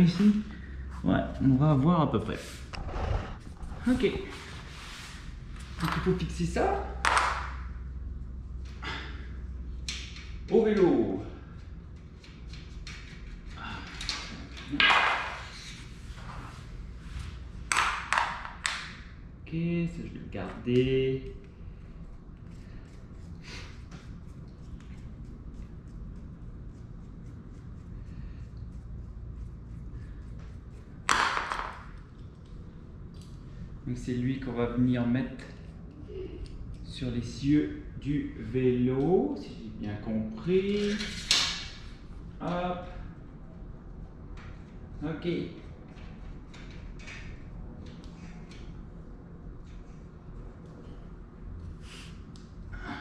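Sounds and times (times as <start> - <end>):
steady low hum: 0.0 - 53.0
metal bicycle parts scraping: 40.6 - 42.0.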